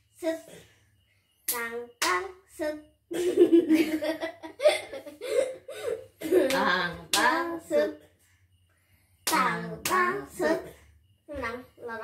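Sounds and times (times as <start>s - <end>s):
hand claps: 1.5s - 2.3s, 6.4s - 7.5s, 9.2s - 10.2s
woman and girl laughing: 3.1s - 6.6s.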